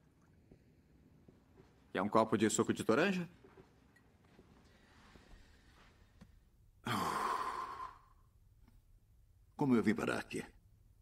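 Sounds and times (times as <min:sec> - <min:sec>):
person sighing: 0:06.8 - 0:08.2.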